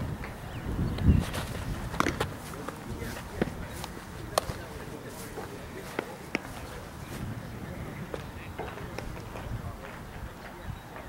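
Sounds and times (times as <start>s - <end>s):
faint distant voices: 0.0s - 11.0s
baseball popping into leather glove: 1.2s - 2.8s, 3.4s - 4.6s.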